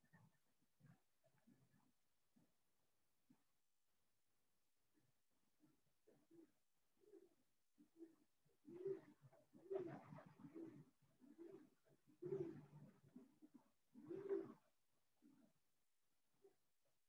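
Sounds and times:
pigeon cooing faintly: 4.9 - 16.7.

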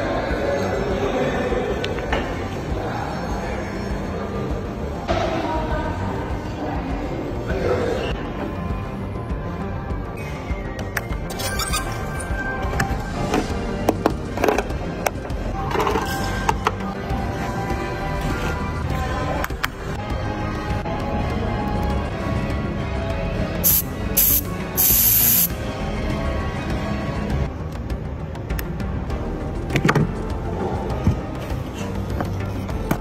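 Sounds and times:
background music: 0.0 - 33.0
loud bursts of hiss: 23.6 - 25.6.

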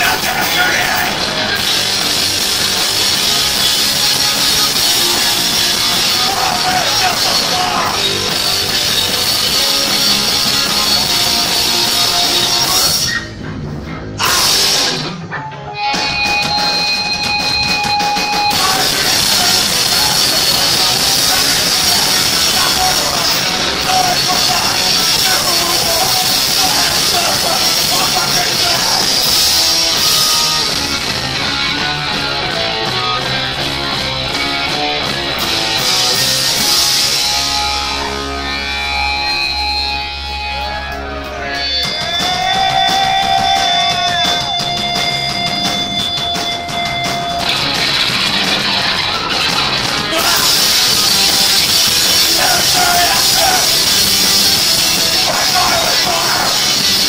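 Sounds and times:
drum kit: 0.0 - 38.1, 40.3 - 57.0
distorted electric guitars: 0.0 - 57.0
punk band playing live: 0.0 - 57.0.

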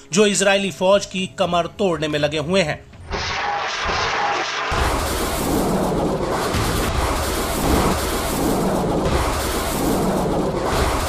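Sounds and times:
battlefield rush of sound: 3.2 - 11.0
deep rumble: 4.8 - 11.0.

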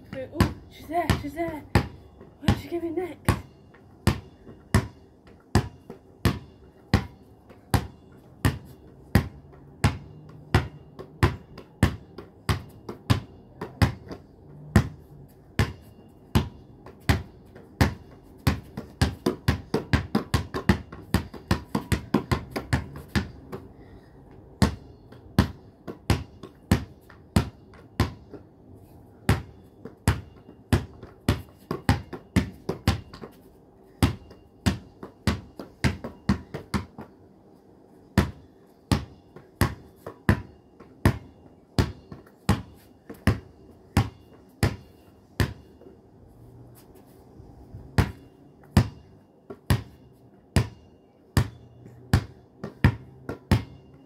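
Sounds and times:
basketball bouncing on concrete: 0.0 - 28.6, 29.2 - 37.2, 38.1 - 45.9, 48.0 - 54.0.

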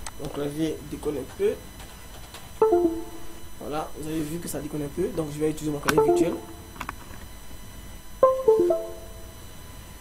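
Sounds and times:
three-note descending chime: 2.6 - 3.4, 6.0 - 6.7, 8.2 - 9.4.

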